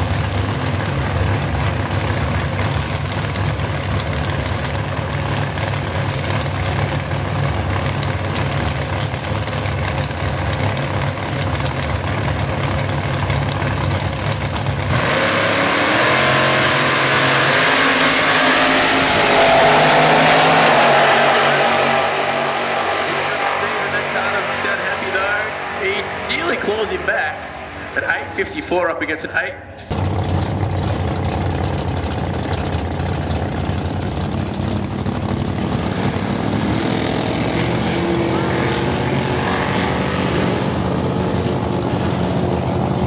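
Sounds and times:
drag car engine: 0:00.0 - 0:43.0.

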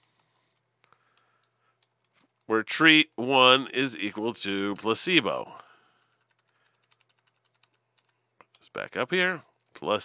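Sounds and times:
faint keyboard typing: 0:00.0 - 0:02.5, 0:04.6 - 0:08.9.

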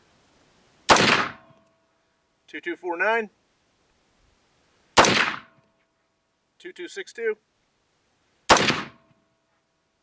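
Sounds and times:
rifle shot: 0:00.9 - 0:01.6, 0:05.0 - 0:05.6, 0:08.5 - 0:09.1.

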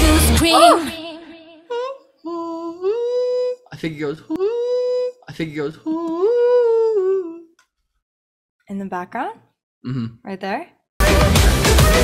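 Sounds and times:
person humming: 0:00.3 - 0:07.6, 0:09.9 - 0:10.2.

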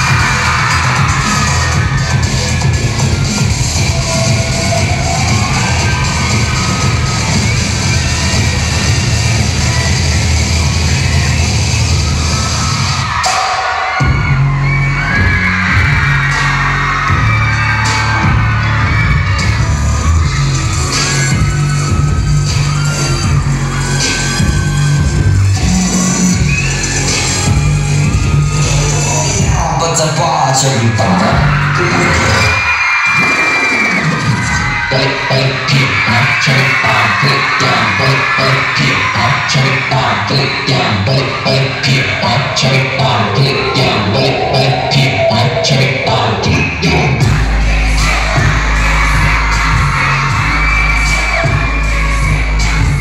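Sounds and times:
dance track over loudspeakers: 0:00.0 - 0:53.0
sung vocal lines: 0:34.8 - 0:53.0.

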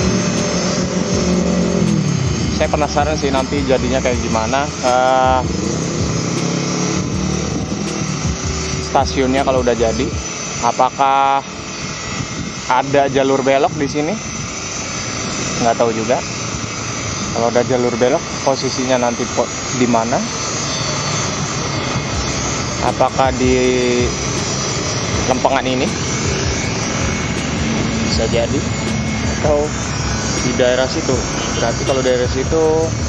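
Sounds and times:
excavator diesel engine droning: 0:00.0 - 0:33.0.

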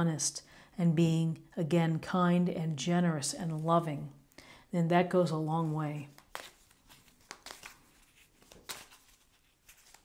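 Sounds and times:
cards shuffling: 0:06.1 - 0:10.0.

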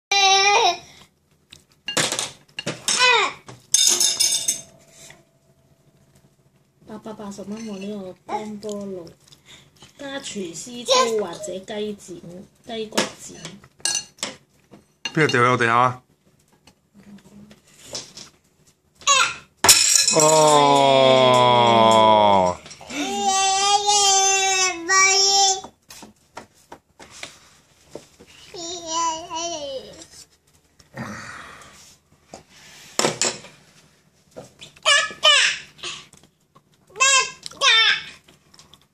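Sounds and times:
spoon clattering onto floor: 0:03.7 - 0:05.2, 0:19.6 - 0:20.5.

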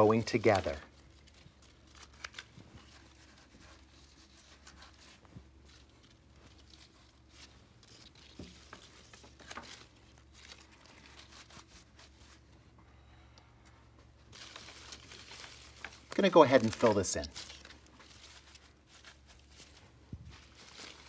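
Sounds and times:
rustling of stems and leaves: 0:00.0 - 0:12.5, 0:14.2 - 0:21.0
low steady hum: 0:00.0 - 0:21.0.

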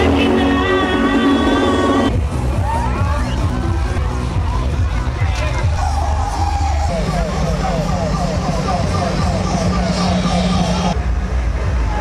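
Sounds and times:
engine humming: 0:00.0 - 0:12.0
voices: 0:00.0 - 0:12.0.

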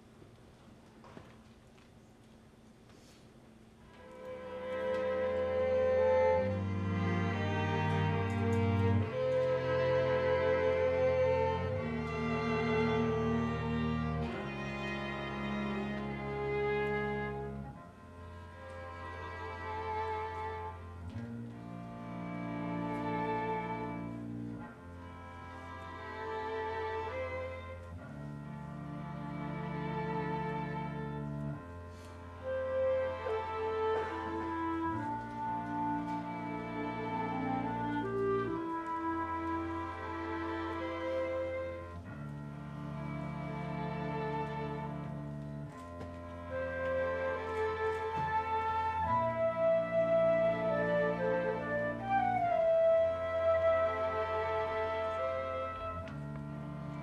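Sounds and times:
strings playing sustained chords: 0:03.9 - 0:57.0.

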